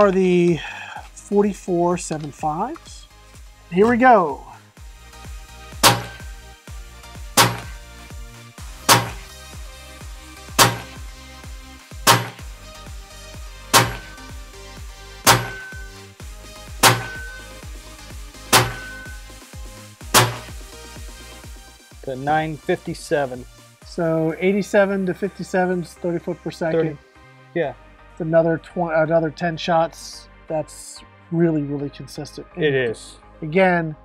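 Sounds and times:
air rifle shots: 5.8s - 6.3s, 7.4s - 7.8s, 8.9s - 9.3s, 10.6s - 11.0s, 12.1s - 12.5s, 13.7s - 14.3s, 15.3s - 16.0s, 16.8s - 17.4s, 18.5s - 19.2s, 20.2s - 20.6s.

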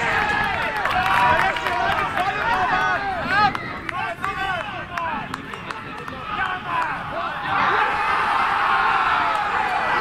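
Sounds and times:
players shouting: 0.0s - 10.0s.

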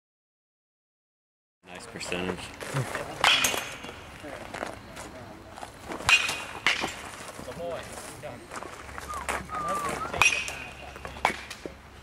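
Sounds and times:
metal bat hitting ball: 3.2s - 3.9s, 6.0s - 7.0s, 10.2s - 11.6s.

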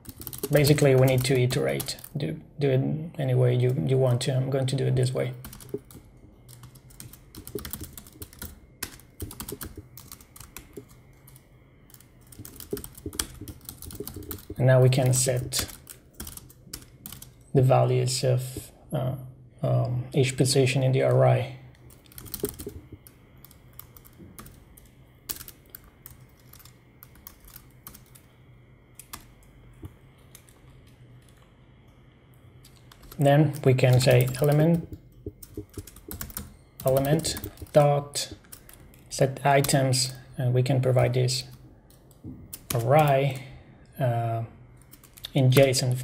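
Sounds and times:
computer keyboard typing: 0.0s - 2.2s, 5.2s - 17.5s, 21.8s - 28.3s, 29.0s - 29.5s, 30.2s - 31.5s, 32.7s - 40.2s, 41.4s - 43.4s, 44.8s - 45.8s
steady low hum: 0.0s - 46.0s.

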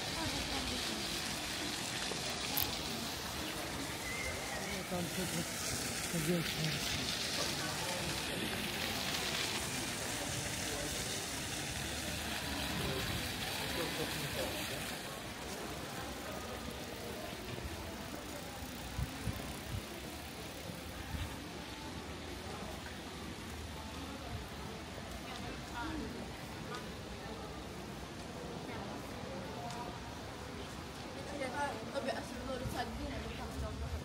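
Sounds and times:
passers-by talking: 0.0s - 34.0s
steady background hiss: 0.0s - 34.0s.

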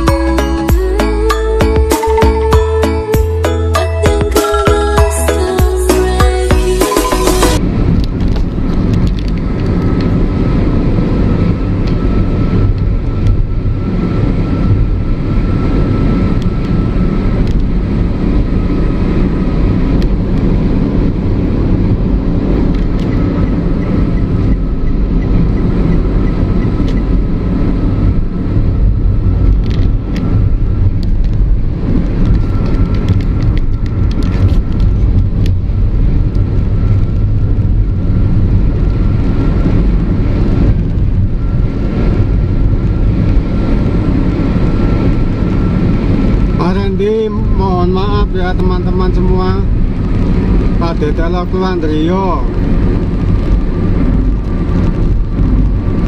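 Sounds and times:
vehicle engine and road noise: 0.0s - 56.0s.

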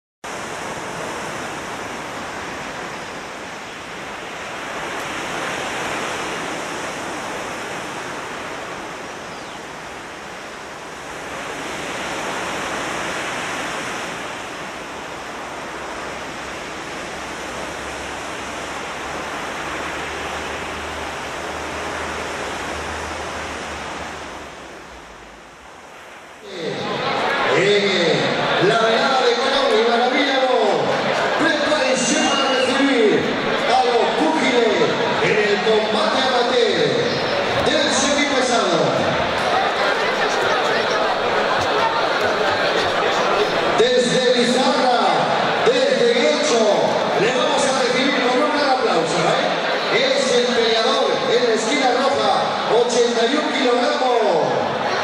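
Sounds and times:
ocean waves breaking: 0.2s - 55.0s.

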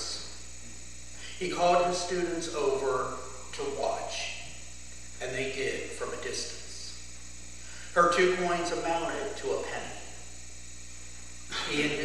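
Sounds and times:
low electrical hum: 0.0s - 12.0s
man speaking: 1.2s - 4.6s, 5.2s - 7.0s, 7.9s - 10.2s, 11.5s - 12.0s.

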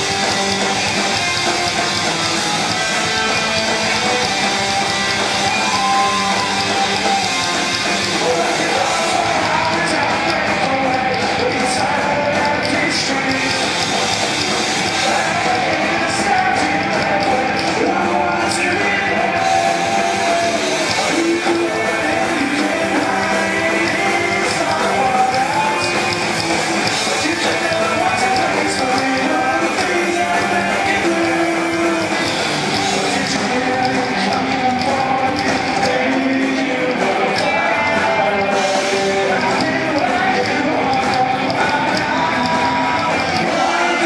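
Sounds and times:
bass guitar: 0.0s - 44.0s
drums: 0.0s - 44.0s
electric guitars: 0.0s - 44.0s
person singing: 2.6s - 44.0s.

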